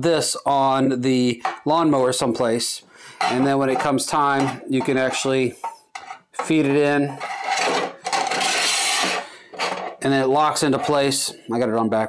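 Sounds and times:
metal rail scraping along channel: 3.2s - 10.0s.

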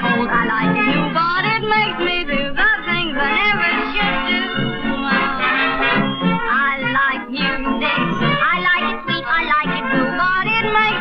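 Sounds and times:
old dance band recording: 0.0s - 11.0s
wavering lead melody line: 0.0s - 11.0s.

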